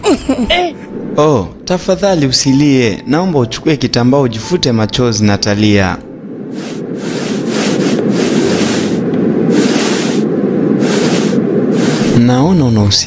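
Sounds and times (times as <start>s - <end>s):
train rumbling with hiss: 6.5s - 12.8s.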